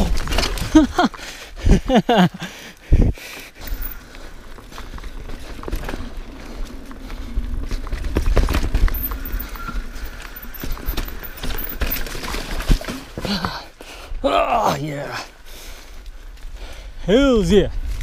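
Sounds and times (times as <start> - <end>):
bike tyres crunching over dirt: 0.0 - 2.2, 3.4 - 14.0
wind rumble on microphone: 2.8 - 4.0, 16.2 - 18.0
bike rattling and knocking: 3.6 - 13.6.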